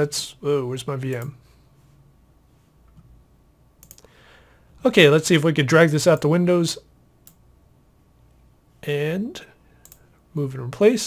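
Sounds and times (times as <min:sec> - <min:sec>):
computer mouse clicks: 0:03.8 - 0:04.1, 0:09.8 - 0:10.1.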